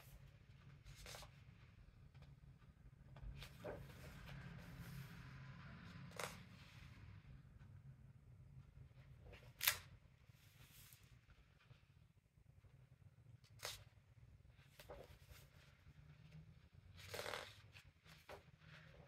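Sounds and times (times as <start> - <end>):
sharp paper flicks: 9.5 - 9.9.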